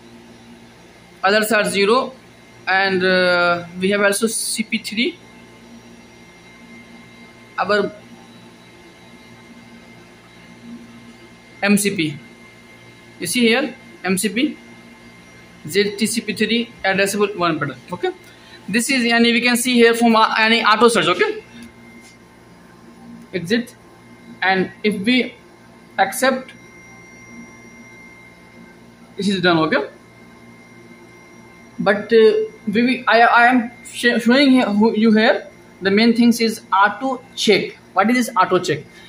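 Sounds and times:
low hum: 0.0s - 39.0s.

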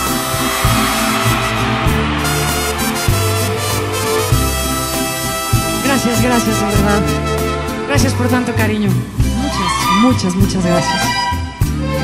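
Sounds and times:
bass line: 0.0s - 9.8s
live band playing: 0.0s - 12.0s.

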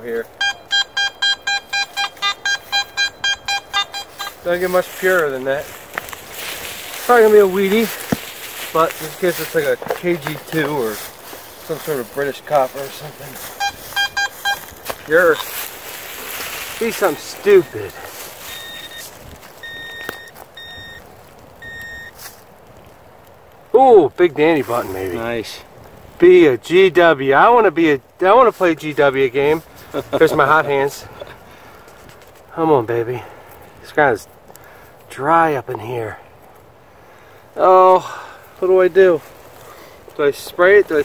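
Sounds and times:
metal detector beeping: 0.3s - 5.3s, 13.5s - 15.6s, 16.8s - 22.2s
dirt scraping: 3.8s - 22.5s, 24.0s - 26.3s.

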